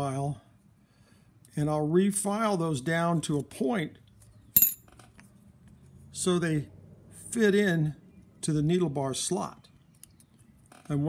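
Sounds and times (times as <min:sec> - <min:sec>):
metal object clinking: 0:04.6 - 0:04.9.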